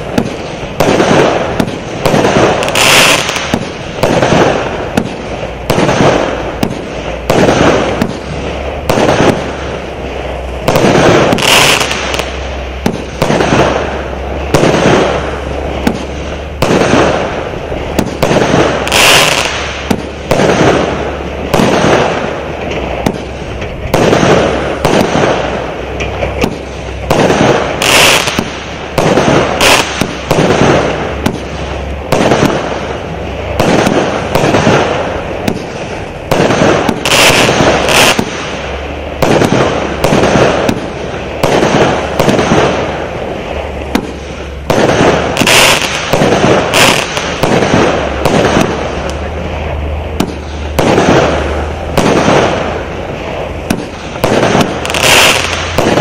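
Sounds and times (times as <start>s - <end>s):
firework launch bangs: 0.0s - 56.0s
firework shells bursting: 0.0s - 56.0s.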